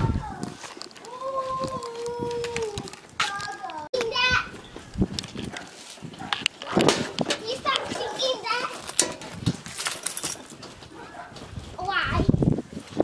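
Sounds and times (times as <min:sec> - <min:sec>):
young children chattering: 0:00.0 - 0:04.6, 0:06.6 - 0:08.8.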